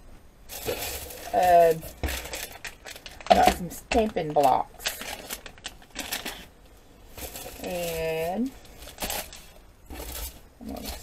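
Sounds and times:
plastic bag crinkling: 0:00.5 - 0:11.0.

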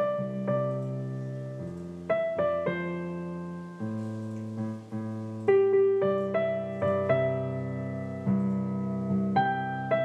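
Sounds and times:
slow piano music: 0:00.0 - 0:10.0.

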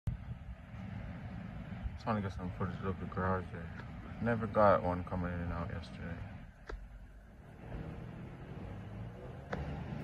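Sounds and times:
city street rumble: 0:00.1 - 0:10.0.

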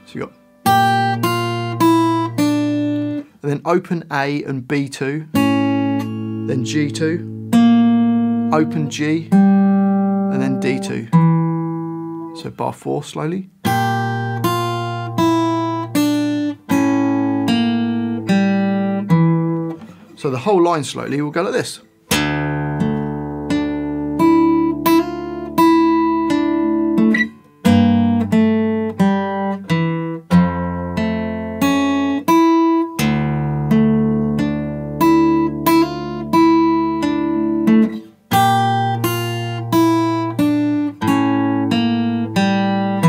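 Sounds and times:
acoustic guitar fingerpicked: 0:00.0 - 0:43.0.

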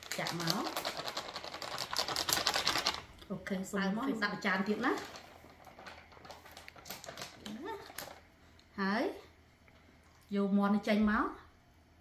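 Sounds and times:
crinkly plastic bag rustling: 0:00.0 - 0:03.2, 0:04.1 - 0:08.3.

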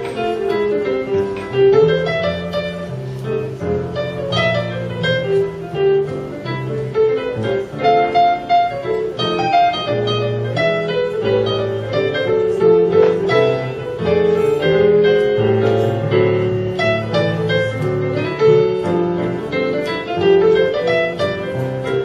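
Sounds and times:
solo jazz piano: 0:00.0 - 0:22.0.

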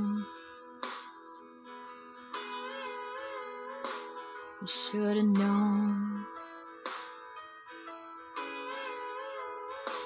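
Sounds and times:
country guitar music: 0:00.0 - 0:10.0.

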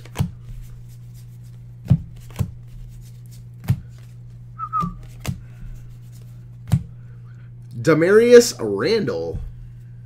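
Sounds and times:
cards snapping: 0:00.0 - 0:00.6, 0:01.8 - 0:05.4
low electrical hum: 0:00.0 - 0:10.0
short whistle-like tone: 0:04.6 - 0:05.0.

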